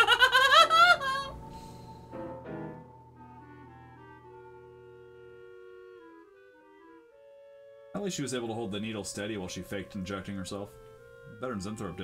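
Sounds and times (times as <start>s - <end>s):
man giggling: 0.0s - 1.3s
faint orchestral film music: 0.0s - 12.0s.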